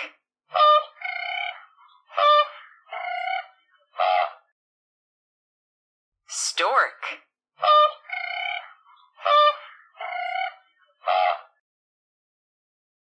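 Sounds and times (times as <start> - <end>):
bird honking calls: 0.0 - 4.4, 7.6 - 11.6.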